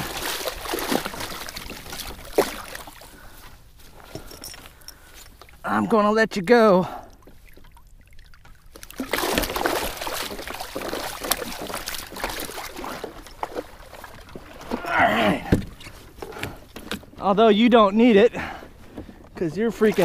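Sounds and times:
water splashing against hull: 0:00.0 - 0:05.6, 0:06.9 - 0:17.4, 0:18.0 - 0:20.0.

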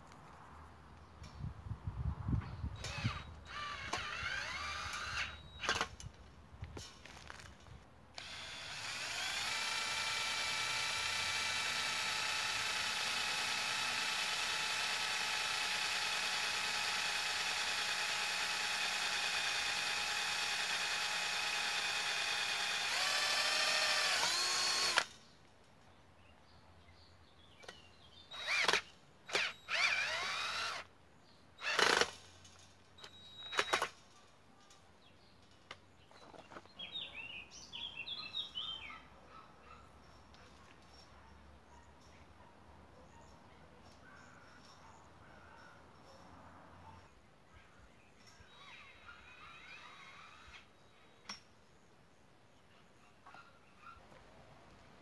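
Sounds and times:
cordless drill boring into wood: 0:02.8 - 0:05.9, 0:08.2 - 0:25.1, 0:28.3 - 0:30.9, 0:31.6 - 0:32.2, 0:33.4 - 0:33.9
drill driving a screw: 0:02.8 - 0:05.9, 0:08.2 - 0:25.1, 0:28.3 - 0:30.9, 0:31.6 - 0:32.2, 0:33.4 - 0:33.9.

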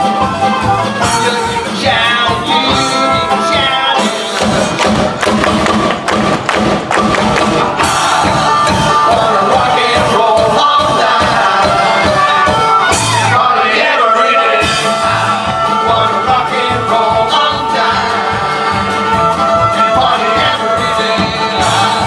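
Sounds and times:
bluegrass band playing: 0:00.0 - 0:22.0
person singing: 0:01.0 - 0:04.8, 0:07.4 - 0:22.0.

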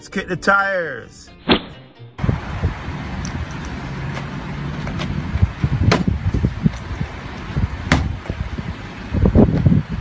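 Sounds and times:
outdoor noise: 0:01.4 - 0:10.0
thumps of car tyre handling: 0:04.1 - 0:06.9, 0:07.8 - 0:08.4.

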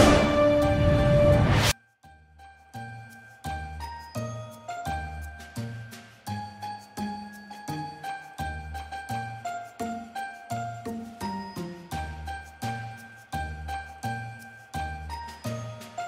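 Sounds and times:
light chiming background music: 0:01.7 - 0:16.0.

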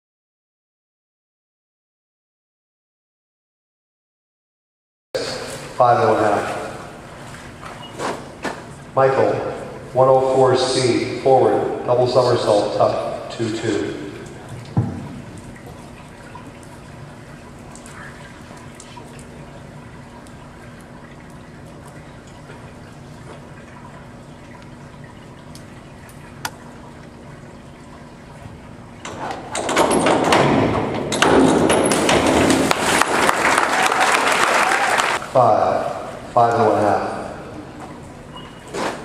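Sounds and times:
indoor pool hall background: 0:05.2 - 0:39.0
crowd applauding and cheering: 0:33.0 - 0:35.2.

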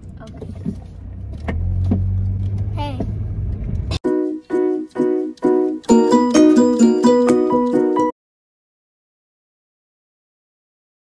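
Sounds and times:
car engine rumble inside cabin: 0:00.0 - 0:04.0.

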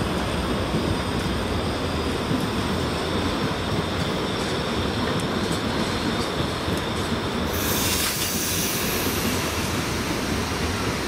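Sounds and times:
train wheels rumbling on rails: 0:00.0 - 0:11.0.

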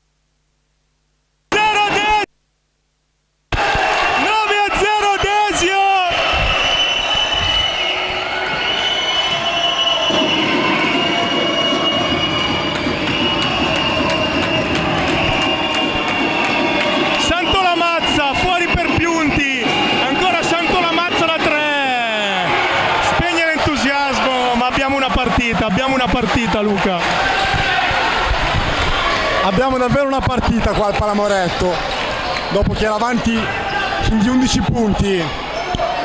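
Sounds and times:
crowd noise and voices: 0:03.5 - 0:36.0
sneakers squeaking on wooden floor: 0:31.8 - 0:32.6.

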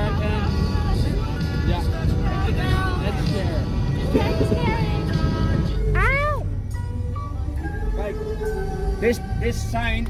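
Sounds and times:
background music with held notes: 0:00.0 - 0:10.0
van rumbling on road: 0:00.0 - 0:10.0.

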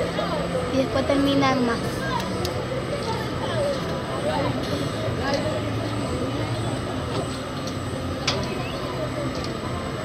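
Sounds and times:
people chattering: 0:00.0 - 0:10.0
ride drive mechanical hum: 0:00.0 - 0:10.0.

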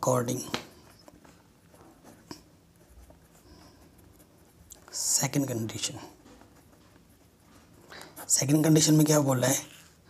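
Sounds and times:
ballpoint pen writing on paper: 0:00.8 - 0:04.9, 0:06.1 - 0:08.9.

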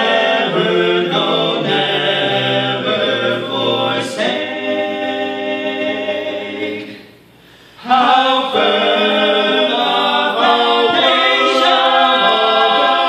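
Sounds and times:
male vocal quartet singing: 0:00.0 - 0:13.0.

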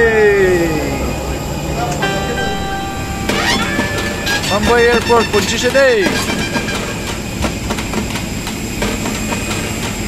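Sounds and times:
jet airliner engine roar: 0:00.0 - 0:09.8
faint high whine: 0:00.1 - 0:07.4.

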